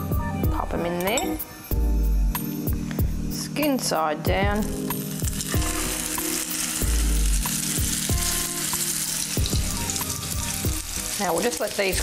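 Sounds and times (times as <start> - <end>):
fish frying in hot oil: 4.5 - 12.0
oil popping and crackling: 4.5 - 12.0.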